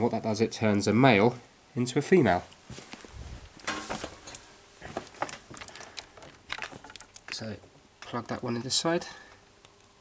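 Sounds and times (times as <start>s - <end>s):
cables and plugs clicking: 3.6s - 10.0s.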